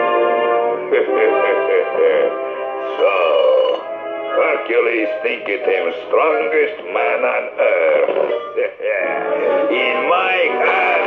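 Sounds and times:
cartoon background music: 0.0 - 11.0
man laughing: 1.0 - 2.4, 7.3 - 9.5.

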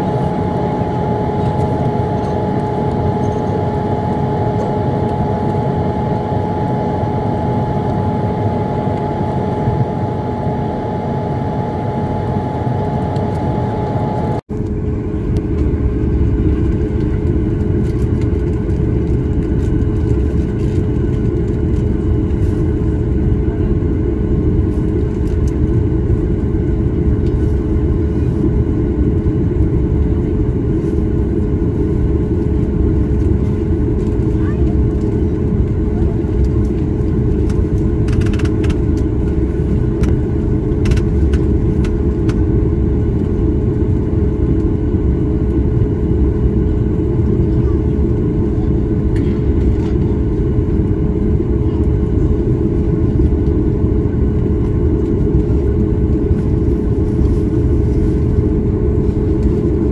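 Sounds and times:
airplane cabin engine rumble: 0.0 - 59.9.

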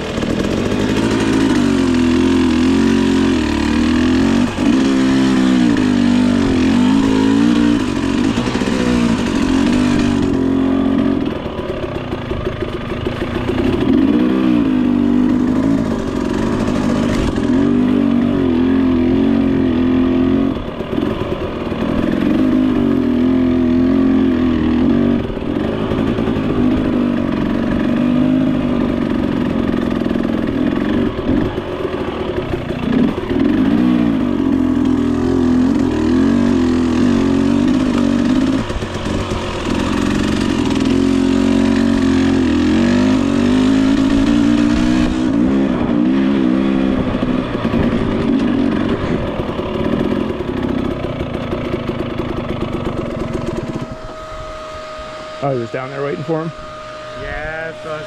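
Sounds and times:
two-stroke dirt bike engine: 0.0 - 58.0.

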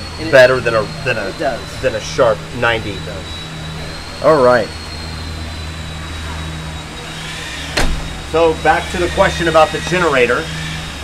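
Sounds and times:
faint high whine: 0.0 - 11.0
low machine hum: 0.0 - 11.0
storage door thump: 7.7 - 8.2.

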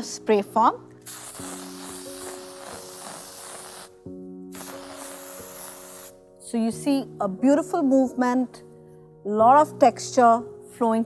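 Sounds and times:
background music: 0.0 - 11.0
aerosol hairspray hissing: 1.0 - 6.2.

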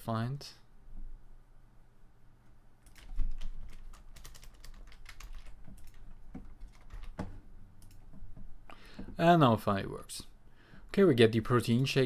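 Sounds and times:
computer keyboard typing: 2.8 - 8.2.

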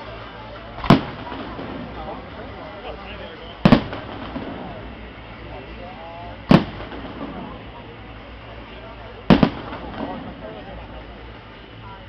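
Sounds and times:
murmur of spectators' voices: 0.0 - 12.0
firework shells bursting: 0.7 - 2.7, 3.6 - 5.4, 6.3 - 7.9, 9.2 - 11.0.

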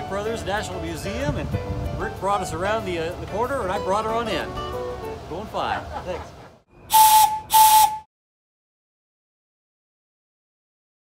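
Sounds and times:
steam locomotive whistle blasts: 6.9 - 8.1.

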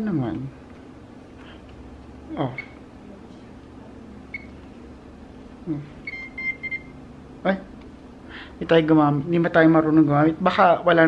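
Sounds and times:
phone handset beeping: 4.3 - 4.6, 6.0 - 7.0.

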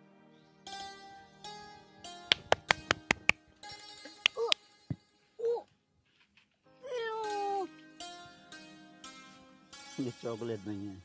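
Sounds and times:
soft background music: 6.7 - 11.0.

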